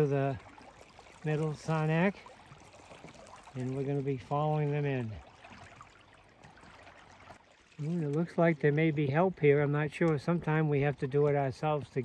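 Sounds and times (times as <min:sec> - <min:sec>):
water lapping and dripping: 0:00.0 - 0:12.0.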